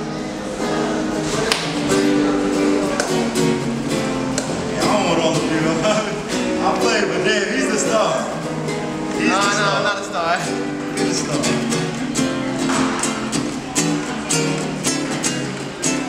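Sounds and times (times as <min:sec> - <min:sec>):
plucked acoustic guitar: 0:00.0 - 0:16.0
man talking: 0:09.2 - 0:11.7.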